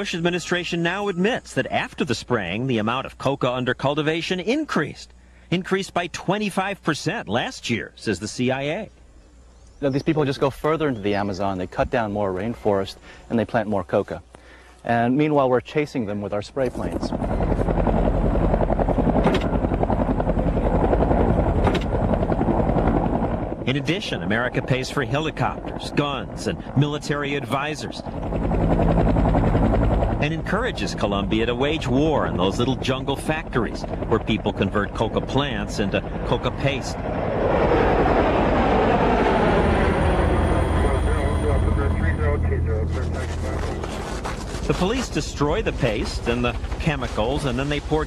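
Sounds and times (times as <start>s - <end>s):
helicopter turbine: 15.9s - 48.0s
helicopter rotor beating: 16.5s - 48.0s.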